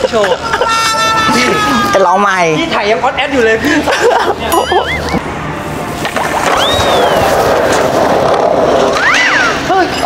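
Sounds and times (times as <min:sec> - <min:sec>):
skateboard wheels rolling on tiles: 0:05.9 - 0:09.8.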